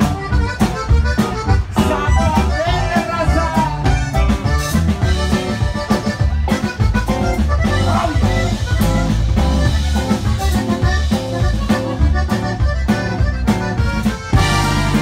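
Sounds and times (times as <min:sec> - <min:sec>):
bass guitar: 0:00.0 - 0:15.0
button accordion melody: 0:00.0 - 0:15.0
drum kit bouncing beat: 0:00.0 - 0:15.0.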